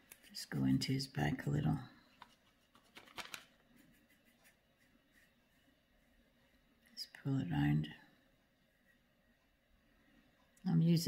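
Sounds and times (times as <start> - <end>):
paintbrush scratching on canvas: 3.6 - 6.2.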